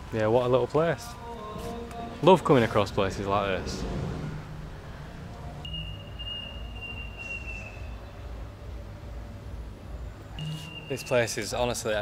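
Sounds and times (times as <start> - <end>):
low outdoor rumble: 1.0 - 10.4
high whistle-like tone: 5.6 - 8.1, 10.3 - 11.4.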